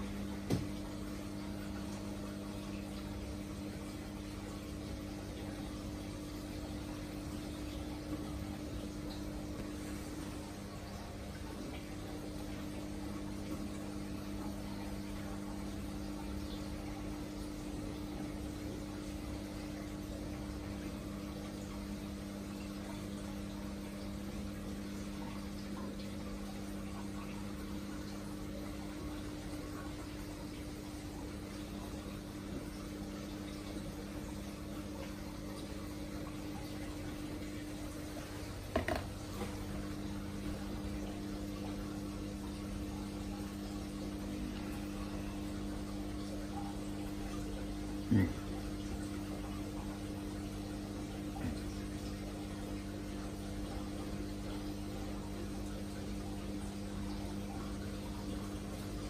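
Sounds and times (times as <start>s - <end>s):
aquarium pump hum: 0.0s - 59.0s
moving water: 0.0s - 59.0s.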